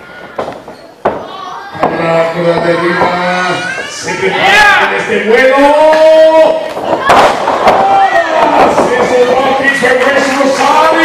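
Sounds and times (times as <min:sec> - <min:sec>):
crowd shouting: 0:02.6 - 0:11.0.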